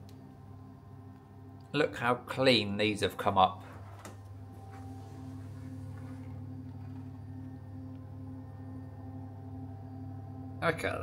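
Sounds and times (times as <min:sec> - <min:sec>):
washing machine motor humming: 0:04.3 - 0:08.2.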